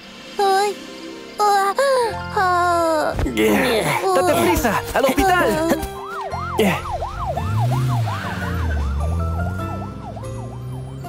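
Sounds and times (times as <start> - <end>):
cartoon police siren wailing: 5.3 - 11.0.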